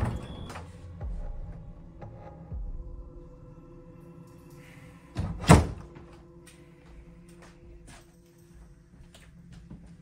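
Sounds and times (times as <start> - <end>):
wooden door shutting: 0.0 - 0.7, 5.2 - 6.0.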